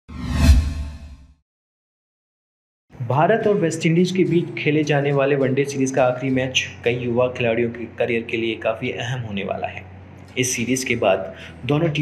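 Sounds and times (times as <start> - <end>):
whoosh swish: 0.1 - 1.2.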